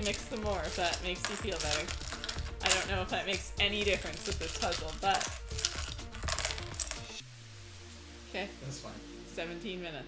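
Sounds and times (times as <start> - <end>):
puzzle pieces clattering on table: 0.0 - 3.0, 4.2 - 7.0.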